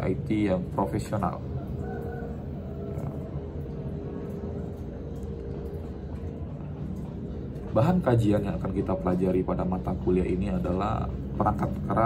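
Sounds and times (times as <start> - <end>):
faint hum: 0.0 - 12.0
low background rumble: 0.0 - 12.0.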